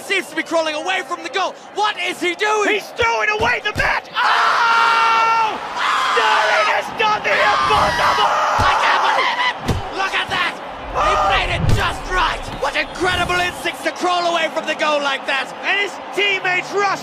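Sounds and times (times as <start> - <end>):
crowd cheering and yelling: 0.0 - 17.0
low thumps: 10.8 - 13.4.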